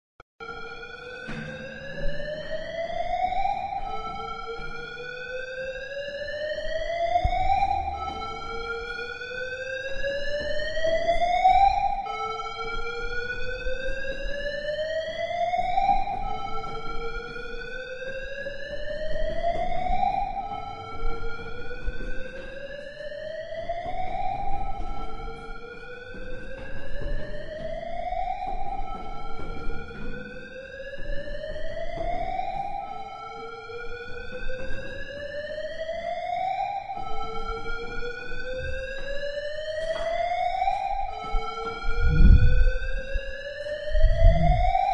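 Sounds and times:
siren-like rising wail: 0.4 - 44.9.

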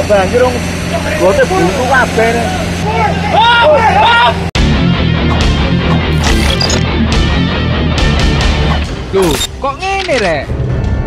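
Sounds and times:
men talking: 0.0 - 4.4
loud music: 4.6 - 9.2.

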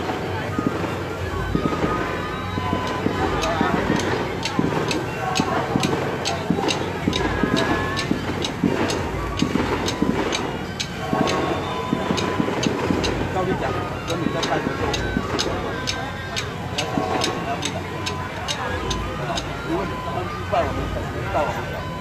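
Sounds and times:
sharp metallic percussion strikes: 0.0 - 20.0
crowd chatter: 0.0 - 22.0.

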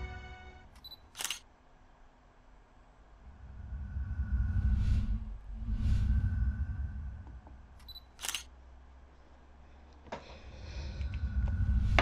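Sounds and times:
sharp click: 0.8 - 1.4
low swelling whooshes: 3.2 - 7.4.

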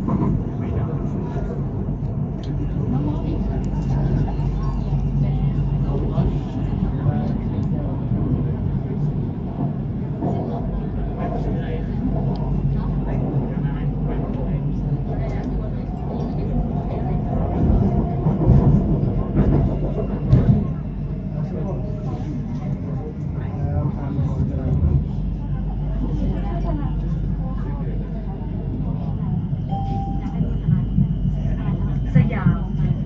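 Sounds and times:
train car rumble and hum: 0.0 - 33.0.

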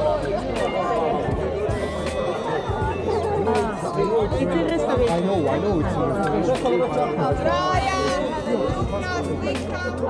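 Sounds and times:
background music: 0.0 - 10.0
people talking: 0.0 - 10.0.

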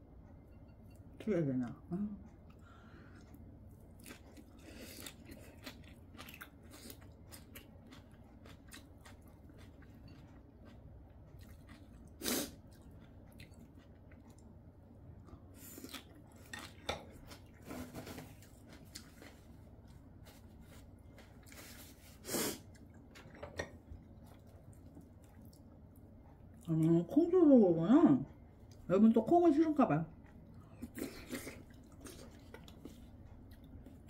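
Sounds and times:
chewing and crunching vegetables: 2.5 - 27.3, 30.1 - 34.0.

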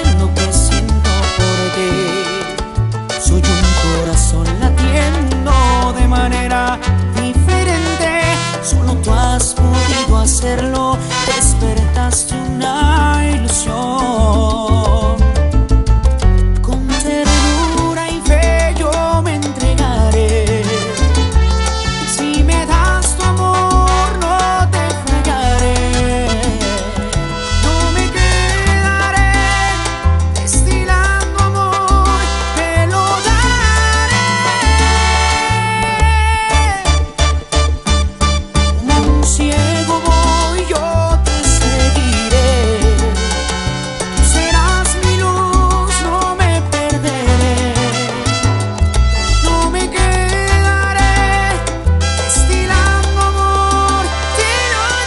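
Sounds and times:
accordion: 0.0 - 55.0
bass line: 0.0 - 55.0
brass: 0.0 - 55.0
salsa band instrumental: 0.0 - 55.0.

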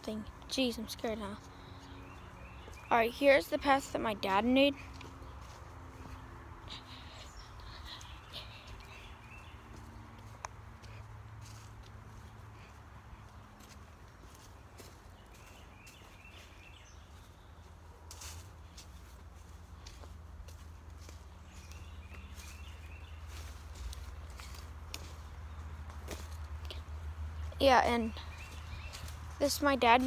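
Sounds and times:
footsteps crunching dry leaves: 3.5 - 30.0.

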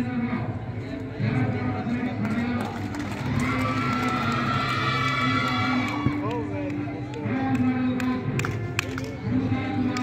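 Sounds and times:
crowd voices overlapping: 0.0 - 10.0.

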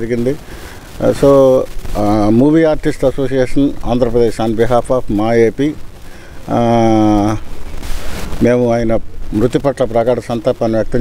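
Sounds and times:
man talking: 0.0 - 0.4, 1.0 - 5.8, 6.4 - 7.5, 8.4 - 11.0.

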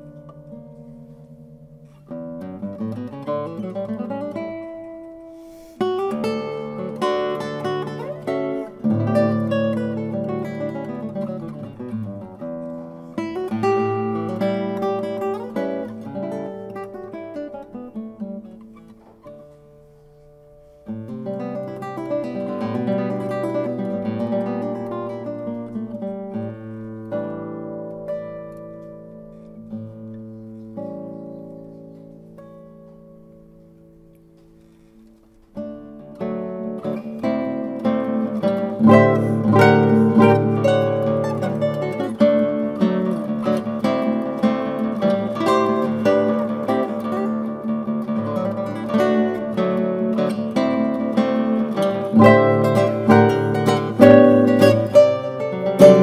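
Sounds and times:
solo classical guitar: 0.0 - 56.0.

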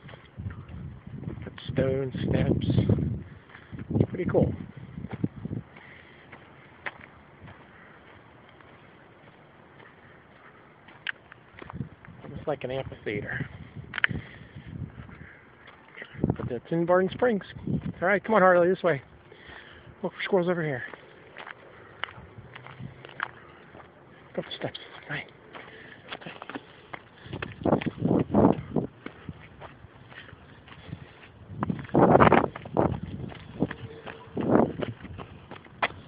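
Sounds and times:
footsteps on rocky ground: 0.0 - 36.0
quiet outdoor background: 0.0 - 36.0.

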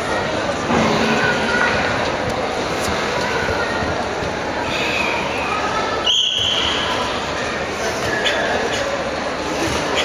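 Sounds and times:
sports hall din: 0.0 - 10.0.

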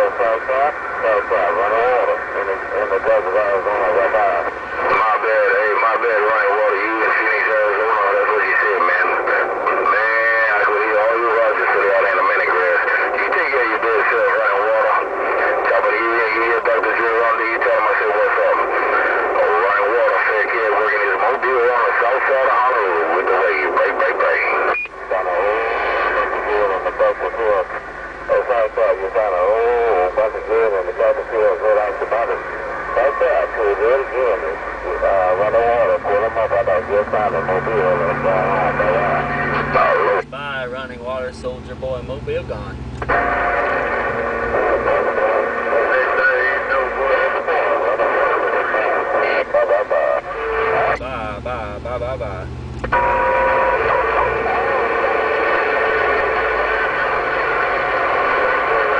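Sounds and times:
garbled radio voices: 0.0 - 58.9
radio static: 0.0 - 58.9.

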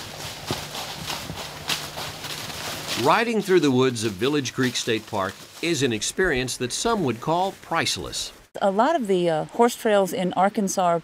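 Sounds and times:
horse hooves clip-clopping on dirt: 0.0 - 8.3.

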